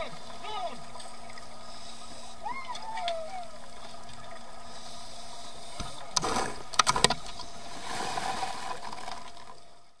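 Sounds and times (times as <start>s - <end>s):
underwater bubbling: 0.0s - 10.0s.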